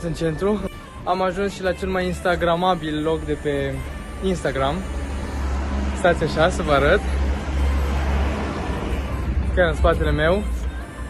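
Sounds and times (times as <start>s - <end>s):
street background rumble: 0.0s - 11.0s.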